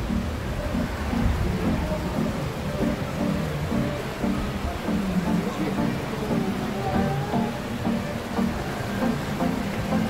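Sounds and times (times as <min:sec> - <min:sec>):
background music with short notes: 0:00.0 - 0:10.0
cable car rumbling: 0:00.0 - 0:10.0.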